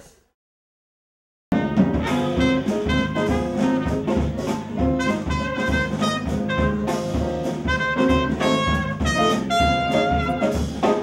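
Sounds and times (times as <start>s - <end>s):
drums playing steady beat: 1.5s - 11.0s
trumpet melody: 1.5s - 11.0s.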